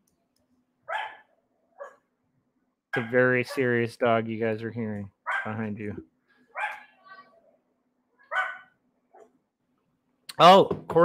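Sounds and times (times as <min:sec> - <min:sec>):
dog barking: 0:00.9 - 0:02.0, 0:03.0 - 0:03.7, 0:05.3 - 0:05.6, 0:06.6 - 0:07.0, 0:08.3 - 0:09.4
dog yipping: 0:00.9 - 0:02.0, 0:05.3 - 0:05.5, 0:06.5 - 0:07.0, 0:08.2 - 0:09.3.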